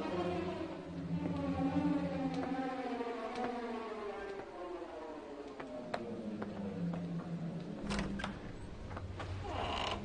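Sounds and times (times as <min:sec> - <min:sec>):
orchestral horror score: 0:00.0 - 0:10.0.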